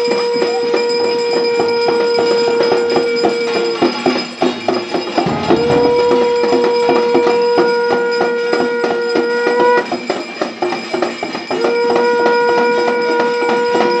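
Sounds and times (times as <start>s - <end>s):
metallic clanging of steel plate: 5.3s - 6.8s
conch shell blown: 5.3s - 6.9s.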